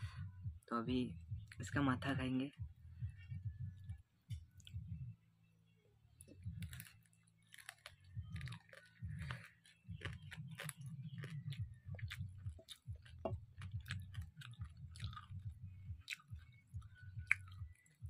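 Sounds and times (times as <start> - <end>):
close-up chewing: 6.2 - 18.0
wet mouth clicks: 17.2 - 18.0.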